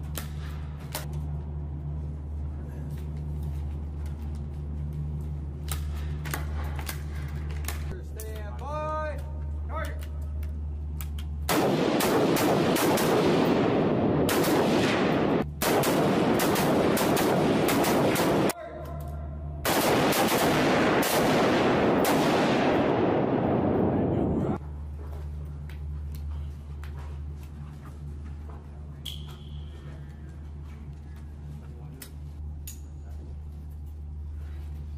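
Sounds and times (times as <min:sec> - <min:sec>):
rifles firing indoors: 0:09.4 - 0:24.6.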